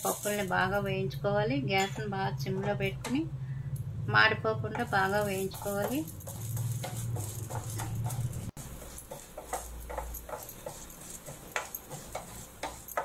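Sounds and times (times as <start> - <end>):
grains rattling across pan: 0.0 - 0.9, 4.8 - 13.0
wooden spatula scraping pan: 5.0 - 13.0.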